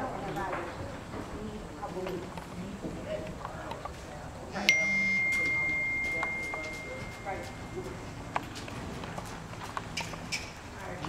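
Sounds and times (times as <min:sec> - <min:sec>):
high ringing tone: 0:04.6 - 0:08.3
hooves on soft ground: 0:05.4 - 0:11.0.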